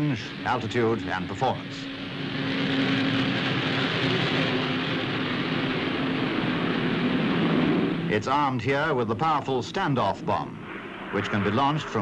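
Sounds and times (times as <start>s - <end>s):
jet bomber flying over: 0.0s - 12.0s.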